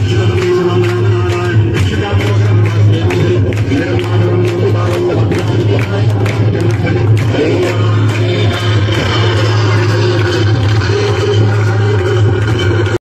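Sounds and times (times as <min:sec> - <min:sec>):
devotional music with singing: 0:00.0 - 0:13.0.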